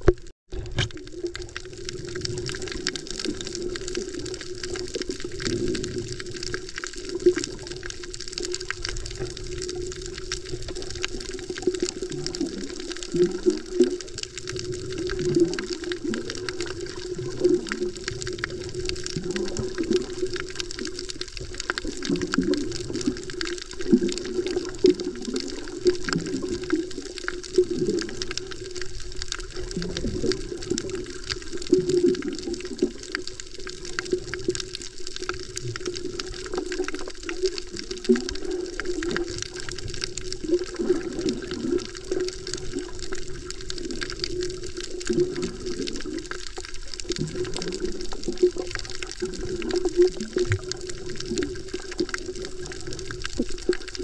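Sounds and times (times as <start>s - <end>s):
muffled underwater water movement: 0.0s - 54.0s.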